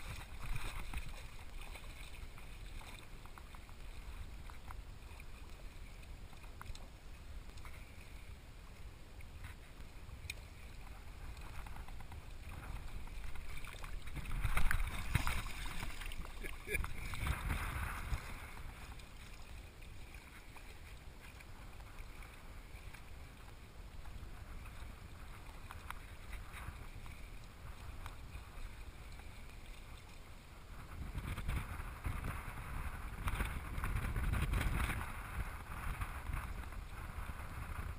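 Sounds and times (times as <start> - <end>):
seawater sloshing and splashing: 0.0 - 37.9.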